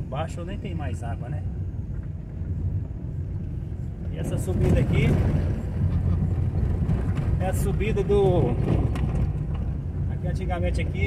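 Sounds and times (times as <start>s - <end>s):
car driving on dirt road: 0.0s - 11.0s.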